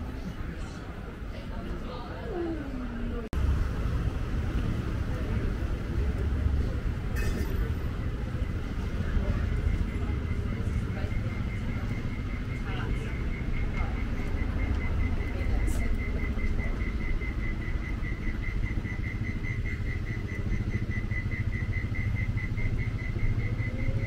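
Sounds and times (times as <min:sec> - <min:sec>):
faint voices: 0:00.0 - 0:24.0
road traffic rumble: 0:00.0 - 0:24.0.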